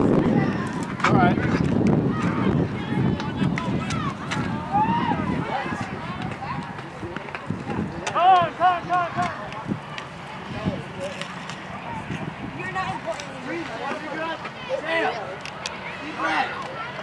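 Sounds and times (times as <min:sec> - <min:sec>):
distant voices calling out: 0:00.0 - 0:17.0.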